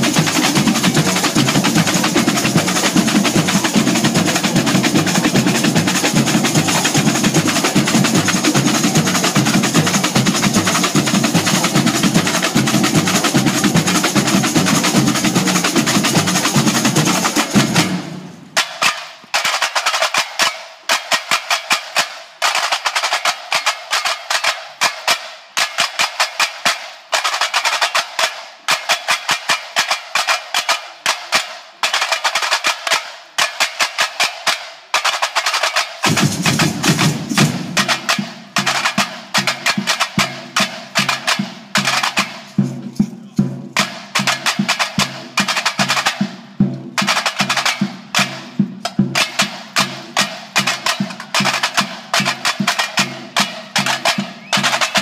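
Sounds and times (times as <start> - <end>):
bass drums: 0.0 - 18.6, 36.0 - 38.0
samba drum ensemble: 0.0 - 55.0.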